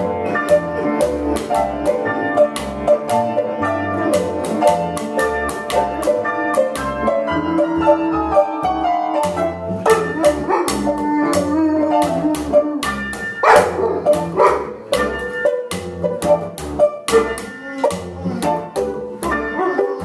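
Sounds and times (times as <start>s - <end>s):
keyboard banjo and bass music: 0.0s - 20.0s
dog howling: 9.8s - 14.8s, 17.2s - 18.6s, 19.4s - 20.0s.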